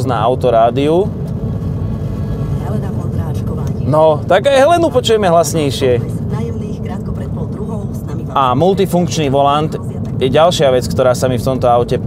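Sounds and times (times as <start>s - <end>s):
road and engine noise in car: 0.0s - 12.0s.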